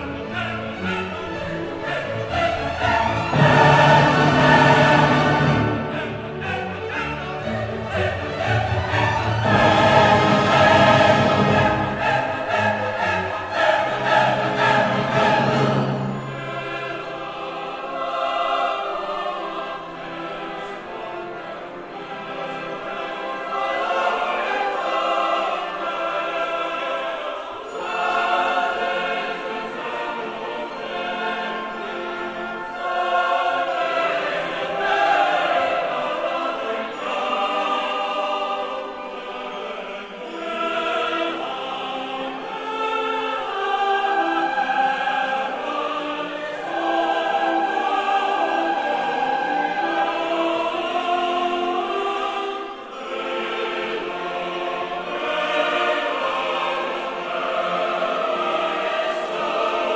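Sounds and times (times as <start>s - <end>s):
opera chorus singing: 0.0s - 59.9s
orchestra playing: 0.0s - 59.9s.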